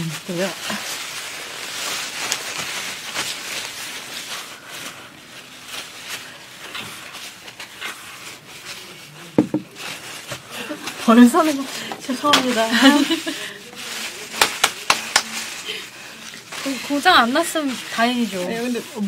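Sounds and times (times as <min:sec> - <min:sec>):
tissue paper rustling and crinkling: 0:00.0 - 0:19.0
sharp knock: 0:09.4 - 0:09.7.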